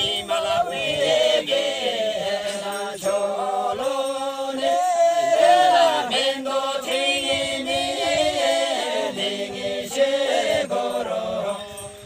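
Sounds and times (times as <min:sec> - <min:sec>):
group singing in unison: 0:00.0 - 0:12.0.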